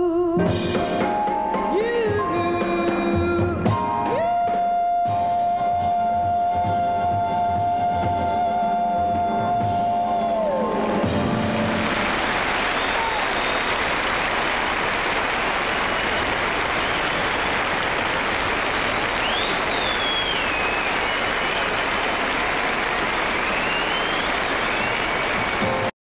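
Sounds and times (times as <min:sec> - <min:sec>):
audience applauding: 0:10.6 - 0:25.9.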